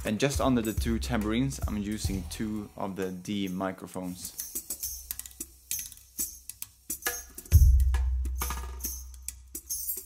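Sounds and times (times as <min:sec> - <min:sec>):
percussion hits with tambourine jingle: 0:00.0 - 0:02.6, 0:04.2 - 0:10.0.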